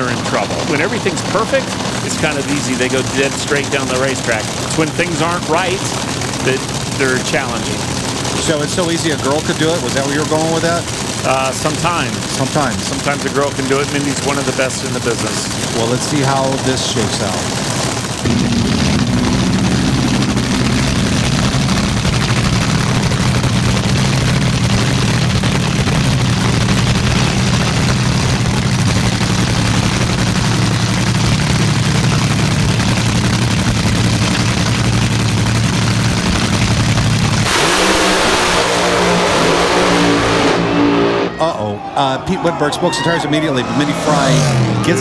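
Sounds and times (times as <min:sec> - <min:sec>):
dragster engines idling and revving: 0:00.0 - 0:45.0.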